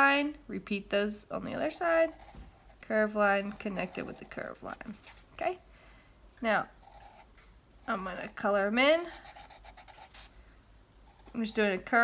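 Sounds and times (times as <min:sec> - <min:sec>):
marker scribbling on cardboard: 0:06.8 - 0:07.3, 0:09.0 - 0:10.3.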